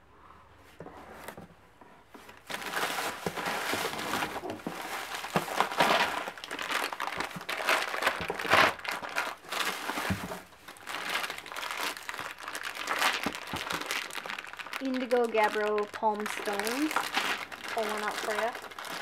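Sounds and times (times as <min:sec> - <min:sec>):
shredded paper rustling: 0:02.3 - 0:19.0.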